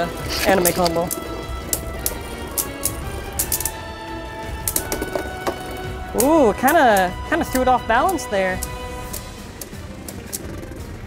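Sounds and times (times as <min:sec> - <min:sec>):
spinning tops clacking: 0:00.0 - 0:03.9, 0:04.5 - 0:11.0
background music: 0:00.0 - 0:11.0.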